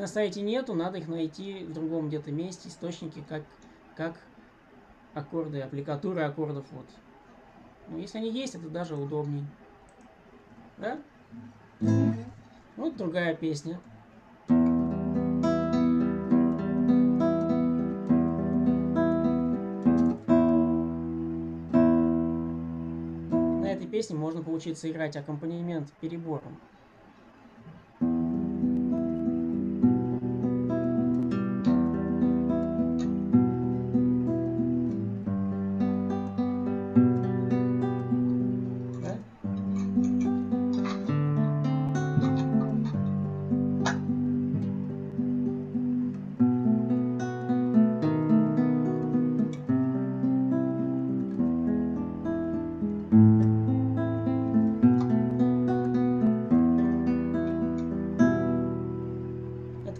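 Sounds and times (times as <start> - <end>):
fingerstyle acoustic guitar: 11.3 - 12.6, 14.4 - 23.9, 27.9 - 59.9.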